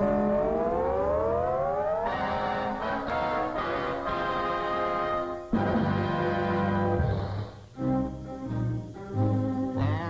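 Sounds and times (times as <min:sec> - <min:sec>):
orchestral chord sliding upward: 0:00.0 - 0:10.0.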